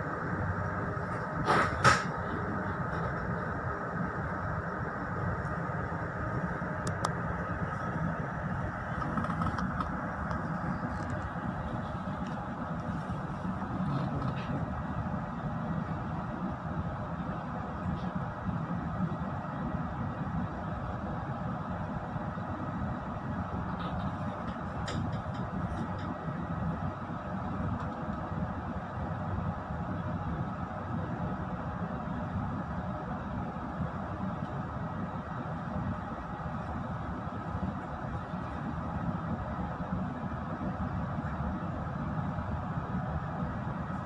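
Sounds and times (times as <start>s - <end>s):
train coaches rumbling past: 0.0s - 6.8s.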